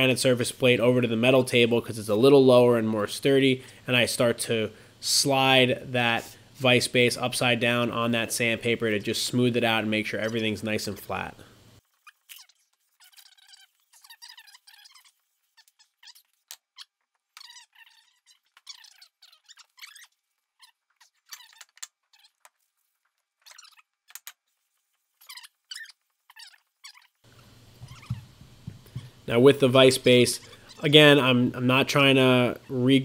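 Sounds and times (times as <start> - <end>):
metal rubbing on sandpaper: 11.8 - 27.2
thin wavering squeals: 11.9 - 22.4, 25.2 - 27.2.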